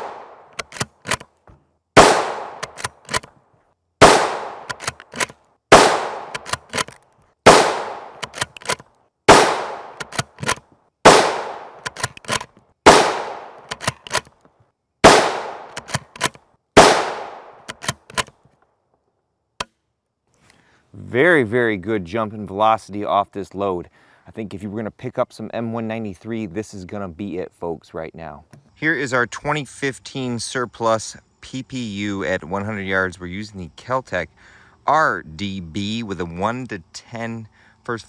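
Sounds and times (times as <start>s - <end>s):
rifle shots with echo: 0.0s - 0.5s, 2.0s - 2.9s, 4.0s - 4.9s, 5.7s - 6.6s, 7.4s - 8.2s, 9.3s - 10.1s, 11.0s - 11.8s, 12.8s - 13.7s, 15.0s - 15.8s, 16.8s - 17.7s
small clicks: 0.5s - 1.6s, 2.6s - 3.4s, 4.6s - 5.6s, 6.3s - 7.4s, 8.2s - 9.0s, 10.0s - 10.7s, 11.8s - 12.7s, 13.6s - 14.7s, 15.7s - 16.4s, 17.6s - 18.7s.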